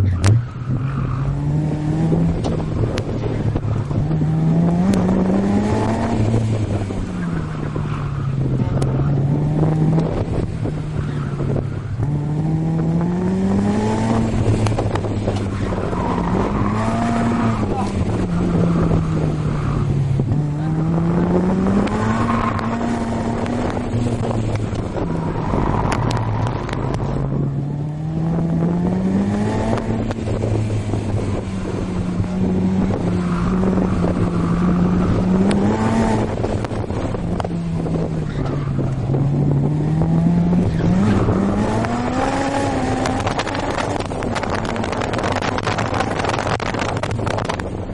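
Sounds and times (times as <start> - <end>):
car engine revving hard: 0.7 - 47.6.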